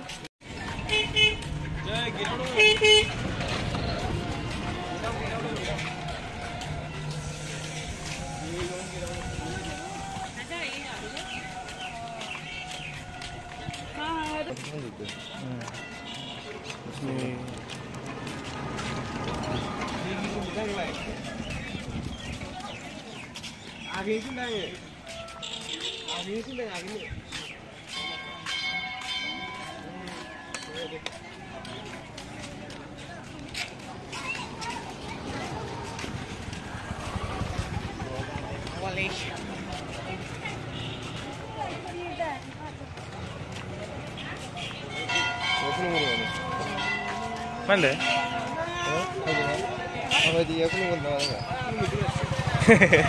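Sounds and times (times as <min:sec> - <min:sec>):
vehicle horn beeps: 0:00.8 - 0:01.6, 0:02.4 - 0:03.3, 0:15.1 - 0:16.7, 0:25.2 - 0:26.4, 0:40.7 - 0:41.4, 0:49.0 - 0:51.0
metal bell ringing: 0:27.9 - 0:31.0, 0:45.0 - 0:51.6.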